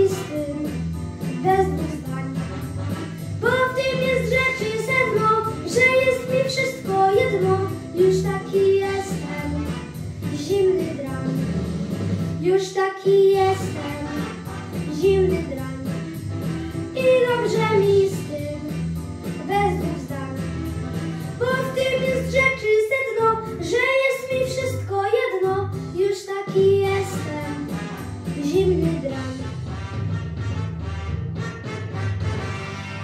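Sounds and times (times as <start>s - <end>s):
boy singing into a microphone: 0.0s - 0.8s, 1.4s - 2.4s, 3.4s - 9.6s, 12.4s - 14.1s, 14.9s - 15.8s, 17.0s - 18.7s, 19.5s - 20.4s, 21.4s - 27.6s, 28.4s - 29.3s
pop-swing backing track: 0.0s - 33.0s.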